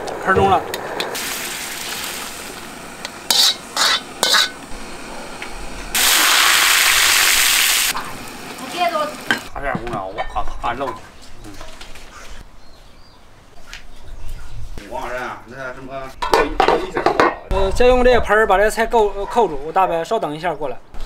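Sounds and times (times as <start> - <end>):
hot oil sizzling: 0.0 - 9.6
ladle clinking and scraping in wok: 3.3 - 4.6.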